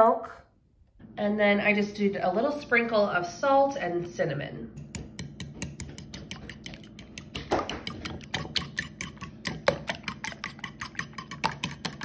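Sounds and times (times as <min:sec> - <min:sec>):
fork whisking in ceramic bowl: 0:04.8 - 0:12.0.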